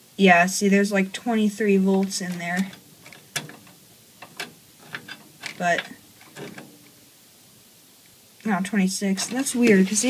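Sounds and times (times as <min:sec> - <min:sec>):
handling rustle: 0:01.3 - 0:07.5, 0:08.1 - 0:10.0.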